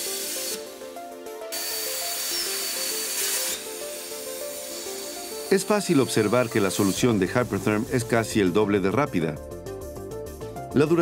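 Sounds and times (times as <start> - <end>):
plasma arc cutting hiss: 0.0 - 8.4
background music with stepped melody: 0.0 - 11.0.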